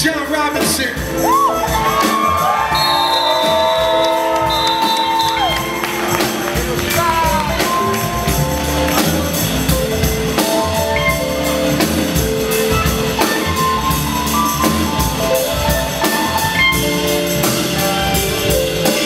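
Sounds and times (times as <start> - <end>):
bass: 0.0 - 19.0
drum kit beat: 0.0 - 19.0
keyboard chords: 0.0 - 19.0.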